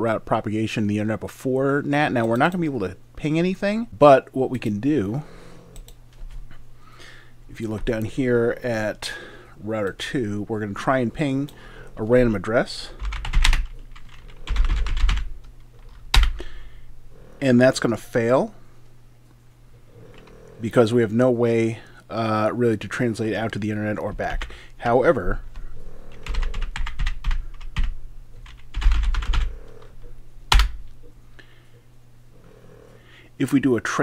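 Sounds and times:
keyboard typing: 12.9s - 16.4s, 26.1s - 30.8s.

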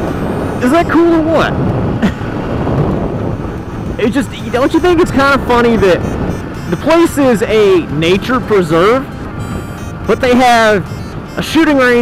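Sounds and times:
motorcycle engine running: 0.0s - 12.0s
wind rush on microphone: 0.0s - 12.0s.

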